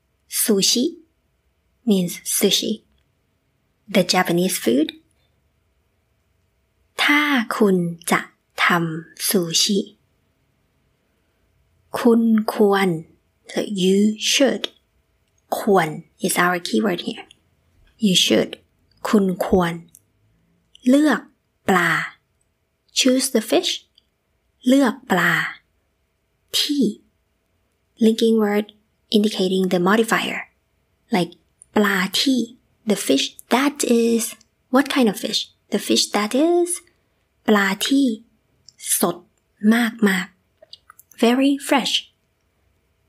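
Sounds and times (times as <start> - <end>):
woman speaking: 0.3 - 1.1, 1.8 - 2.9, 3.9 - 5.0, 7.0 - 10.0, 11.9 - 14.8, 15.5 - 20.0, 20.8 - 22.2, 22.9 - 24.0, 24.6 - 25.7, 26.5 - 27.1, 28.0 - 42.2.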